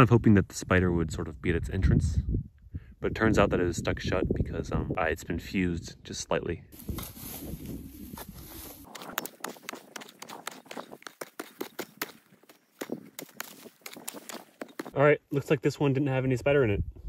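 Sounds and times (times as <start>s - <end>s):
dirt crumbling: 6.8s - 15.0s
digging tool striking hard soil: 8.2s - 15.0s.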